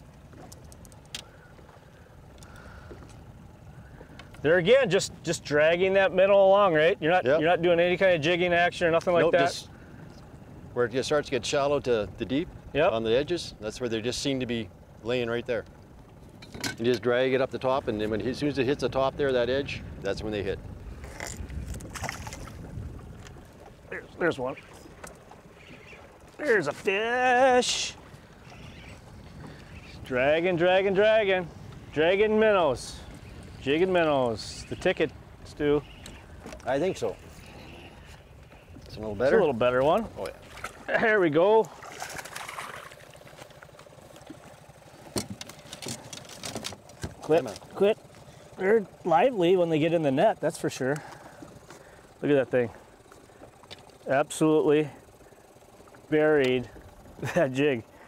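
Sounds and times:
small waves against boat: 0.0s - 58.0s
wind and water rumble: 0.0s - 58.0s
light ticks and clicks: 0.4s - 1.4s.

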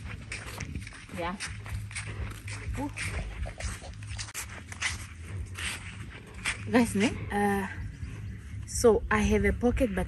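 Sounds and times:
footsteps on sandy dirt road: 0.0s - 10.0s.

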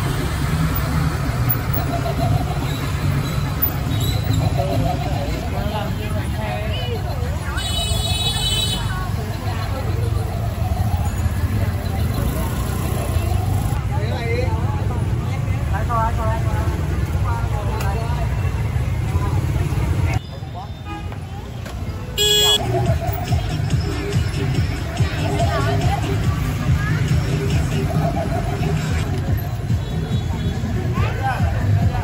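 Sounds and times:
crowd chatter: 0.0s - 32.0s
motorbike traffic rumble: 0.0s - 32.0s.

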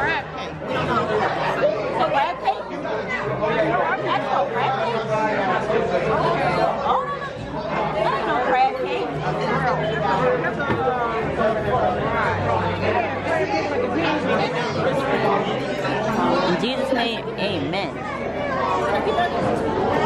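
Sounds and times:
restaurant chatter: 0.0s - 20.0s.

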